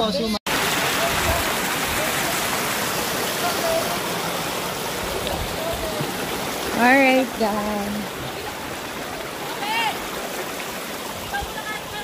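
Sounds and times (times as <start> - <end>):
water rushing: 0.5 - 12.0.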